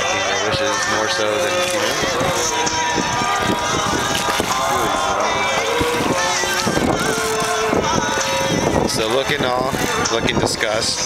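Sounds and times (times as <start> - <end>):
overlapping voices: 0.0 - 11.0.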